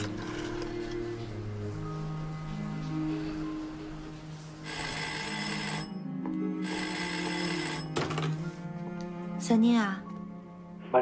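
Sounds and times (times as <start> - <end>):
old telephone bell ringing: 4.6 - 8.2.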